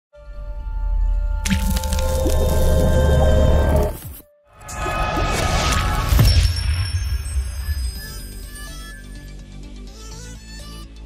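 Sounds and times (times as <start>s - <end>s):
wet splashy sound effect: 1.4s - 3.0s.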